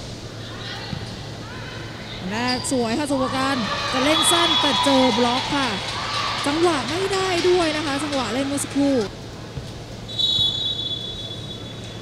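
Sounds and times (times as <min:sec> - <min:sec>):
referee's whistle blast: 0:04.1 - 0:05.0, 0:10.1 - 0:11.8.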